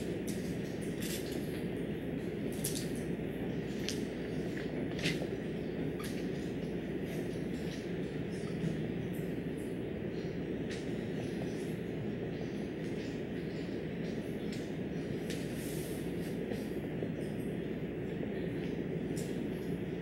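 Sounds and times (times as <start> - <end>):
low room rumble: 0.0 - 20.0.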